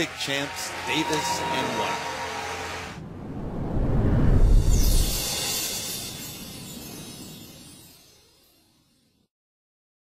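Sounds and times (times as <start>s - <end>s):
deep low rumble: 3.0s - 5.5s.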